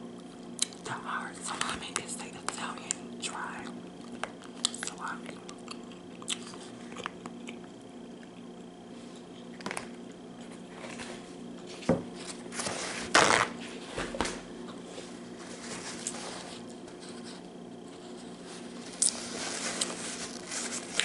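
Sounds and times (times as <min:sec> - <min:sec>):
paper towel tearing: 0:13.0 - 0:13.6
plastic wrapper crinkling: 0:18.7 - 0:21.0.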